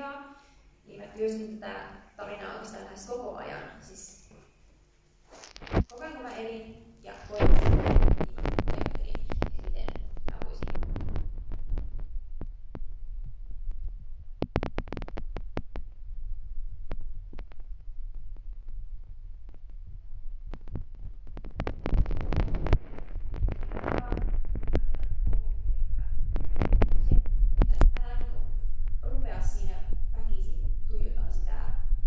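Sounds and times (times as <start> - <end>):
microphone handling clicks: 5.3 - 30.1
microphone hum: 5.3 - 32.0.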